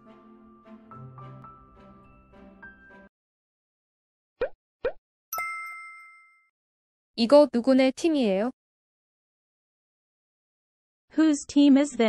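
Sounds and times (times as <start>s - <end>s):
bright bell-like ding: 5.4s - 6.5s.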